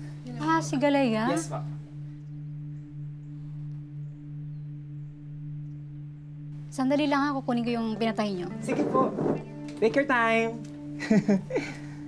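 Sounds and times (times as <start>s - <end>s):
low synth drone: 0.0s - 9.7s.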